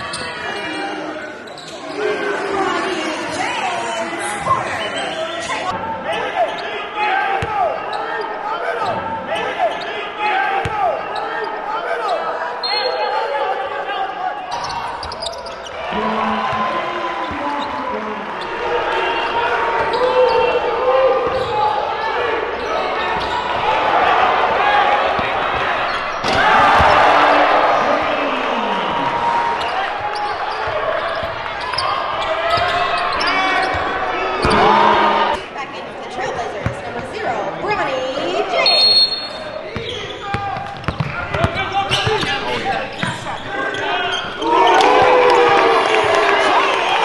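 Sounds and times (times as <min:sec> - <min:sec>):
crowd cheering: 0:00.0 - 0:35.7, 0:37.7 - 0:47.0
crowd voices and shouts: 0:00.0 - 0:47.0.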